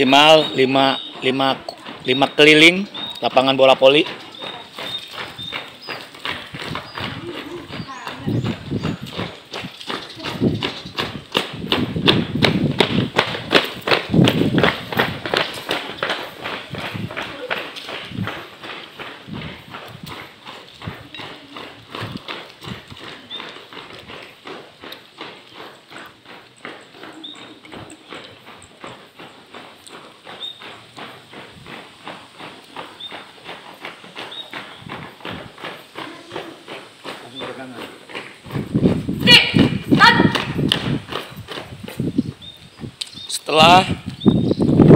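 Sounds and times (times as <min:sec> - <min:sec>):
footsteps jogging on concrete: 0:00.0 - 0:44.9.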